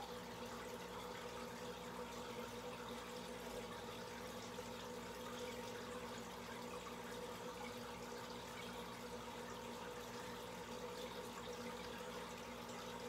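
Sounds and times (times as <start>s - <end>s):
faint pump hum: 0.0s - 13.0s
water trickling and splashing: 0.0s - 13.0s.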